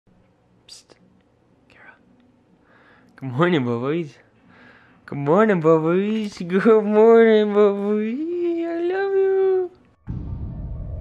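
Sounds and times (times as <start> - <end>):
low room hum: 0.1 - 10.0
person whispering: 0.6 - 1.0, 1.6 - 2.1.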